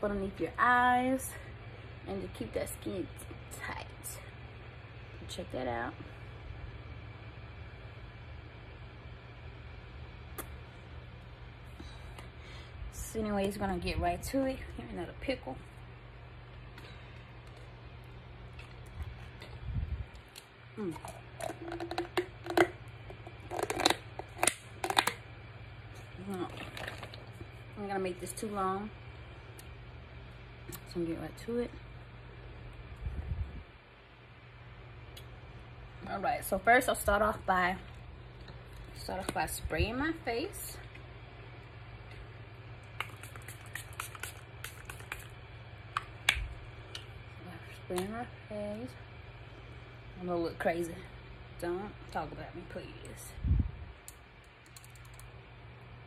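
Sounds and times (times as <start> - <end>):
pickle being chewed: 16.5 - 25.2, 42.8 - 47.2.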